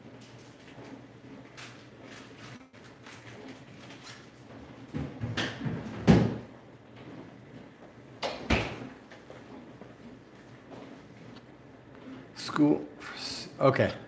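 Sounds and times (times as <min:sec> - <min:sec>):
refrigerator door knocks and thumps: 0:04.9 - 0:06.5.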